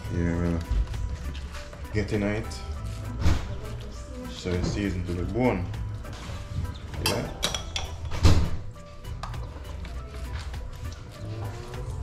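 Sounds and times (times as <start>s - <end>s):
background music: 0.0s - 12.0s
spoon knocking and clinking: 7.0s - 8.3s.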